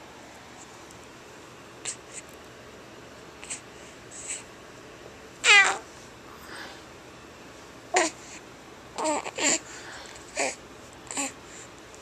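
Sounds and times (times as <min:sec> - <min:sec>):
baby squealing: 0:05.4 - 0:05.8.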